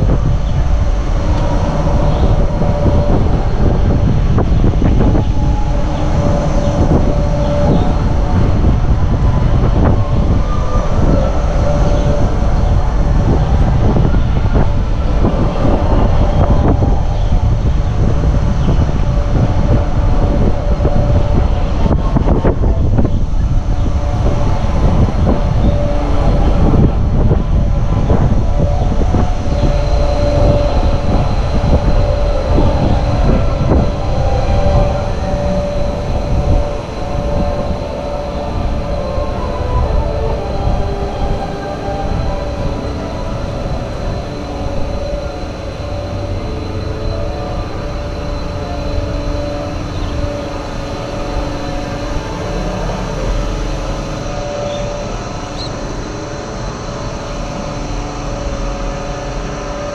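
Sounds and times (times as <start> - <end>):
steady mechanical whine: 0.0 - 59.9
wind buffeting microphone: 0.0 - 59.9.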